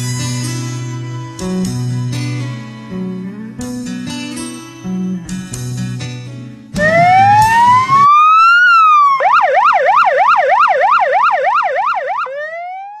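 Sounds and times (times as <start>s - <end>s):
acoustic guitar music: 0.0s - 8.1s
emergency vehicle siren: 6.8s - 13.0s.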